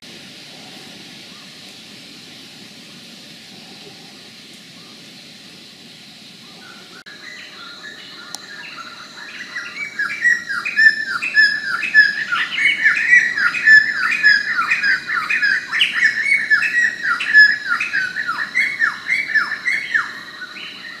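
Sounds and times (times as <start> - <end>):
forest birds calling: 0.3 - 21.0.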